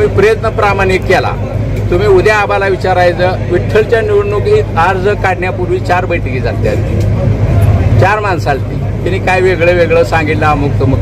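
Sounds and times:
man speaking: 0:00.0 - 0:07.0.

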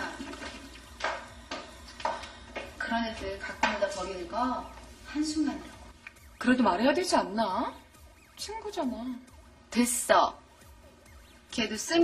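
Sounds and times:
toilet flushing: 0:00.0 - 0:01.2.

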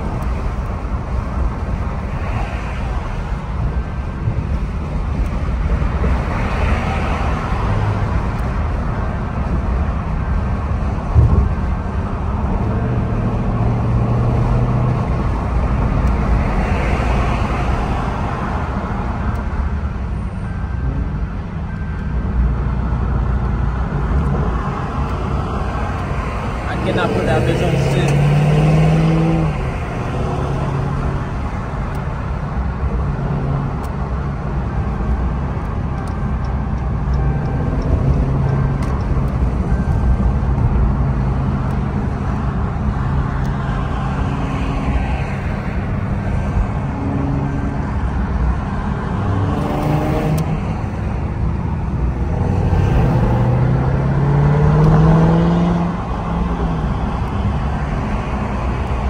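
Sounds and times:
car engine hum: 0:00.0 - 0:59.0.

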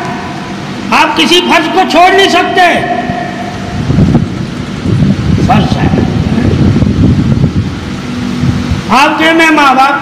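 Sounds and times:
loud low rumbling noise: 0:00.0 - 0:10.0.

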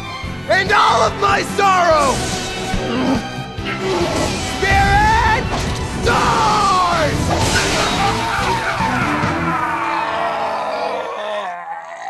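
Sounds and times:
man yelling: 0:00.5 - 0:02.0, 0:04.6 - 0:07.2.

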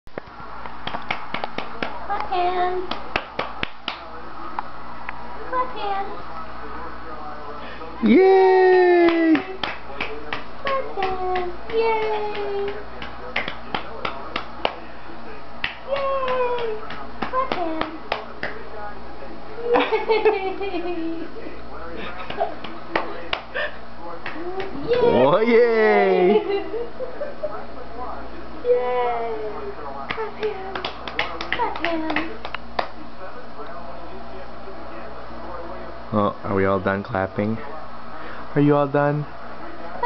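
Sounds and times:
baby clapping hands: 0:00.8 - 0:02.0, 0:02.8 - 0:04.0, 0:09.0 - 0:14.8, 0:15.6 - 0:18.6, 0:22.2 - 0:23.5, 0:24.2 - 0:24.8, 0:30.1 - 0:33.0.

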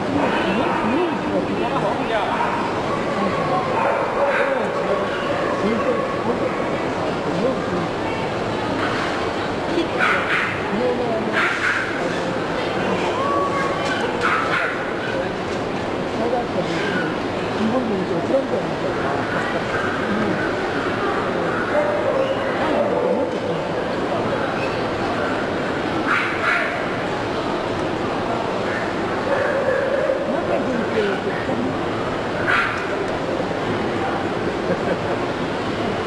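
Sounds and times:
murmur of voices: 0:00.0 - 0:36.0
people chatting: 0:00.0 - 0:36.0
dog barking: 0:03.8 - 0:04.6, 0:10.0 - 0:10.6, 0:11.4 - 0:12.0, 0:14.2 - 0:14.8, 0:26.1 - 0:26.8, 0:29.3 - 0:30.2, 0:32.4 - 0:32.9.

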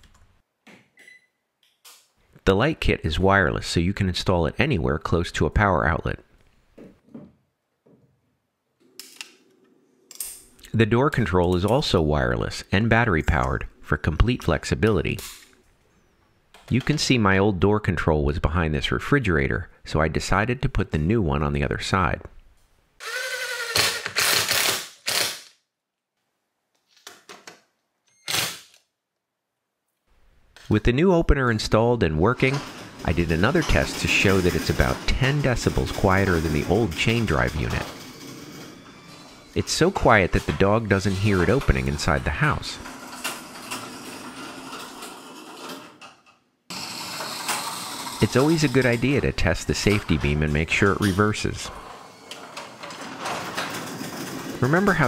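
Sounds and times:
cordless drill driving screws: 0:23.0 - 0:25.5, 0:28.3 - 0:28.8
garage door rolling in tracks: 0:31.6 - 0:55.0.

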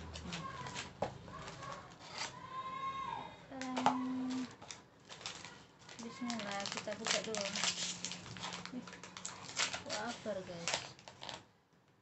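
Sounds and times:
foil pouch crinkling: 0:04.2 - 0:11.4.

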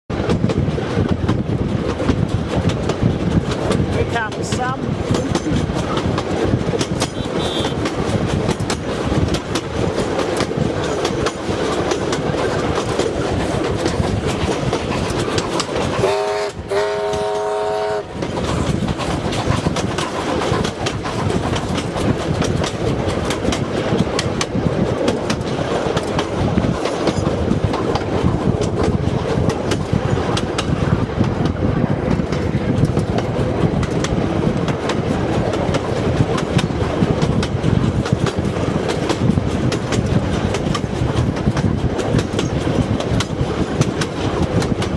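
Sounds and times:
train rumble with wheel clacks: 0:00.1 - 0:44.9
steam locomotive whistle: 0:07.2 - 0:07.8, 0:16.0 - 0:18.1.

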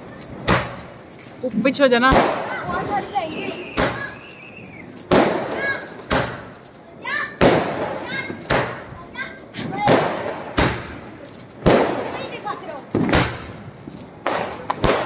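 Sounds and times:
fireworks bangs: 0:00.3 - 0:01.1, 0:01.7 - 0:15.0.

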